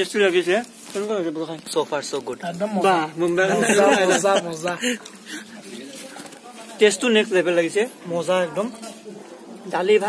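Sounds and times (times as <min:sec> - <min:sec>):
man speaking: 0:00.0 - 0:05.9
background chatter: 0:00.0 - 0:10.0.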